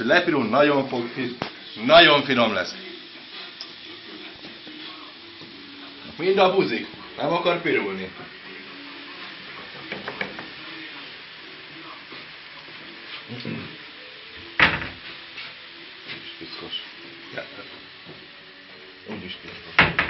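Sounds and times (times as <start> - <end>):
dumplings sizzling in a pan: 0.0 - 20.0.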